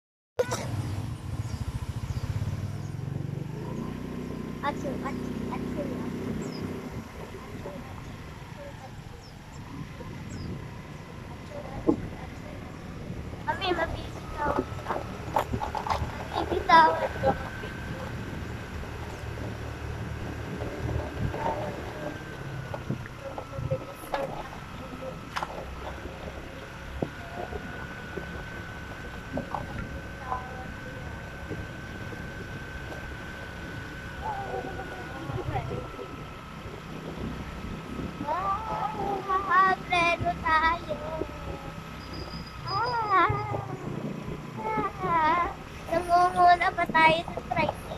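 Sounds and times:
small motorcycle engine running: 0.4s - 47.9s
wind rushing over microphone: 5.2s - 47.9s.

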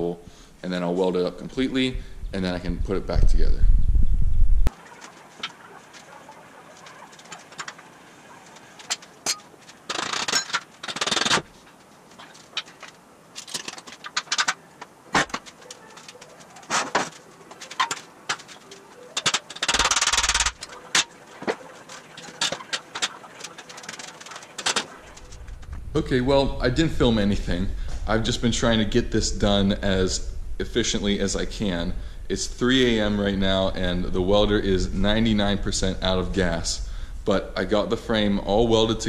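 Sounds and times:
metal parts and tools clanking: 5.0s - 25.7s.

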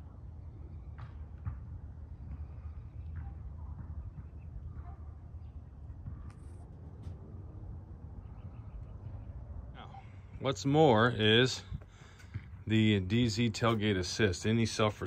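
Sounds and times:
wind rumble on microphone: 0.0s - 10.6s
bird chirps: 8.2s - 9.4s.

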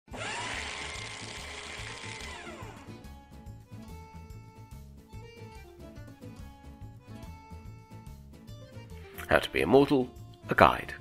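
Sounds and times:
loud motor-like whir: 0.1s - 3.2s.

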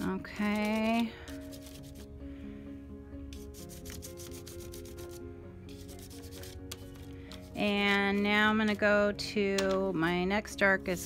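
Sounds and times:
soft background music: 0.0s - 11.0s
pastel scratching on paper: 0.3s - 2.1s, 3.3s - 8.3s.

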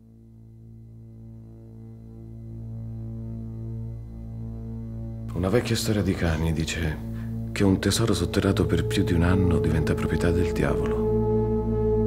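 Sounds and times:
ambient film-score drone music: 0.0s - 12.0s.

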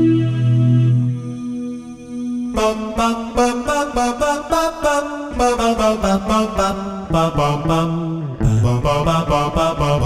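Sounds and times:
voice-like guitar synthesizer: 0.0s - 10.0s.

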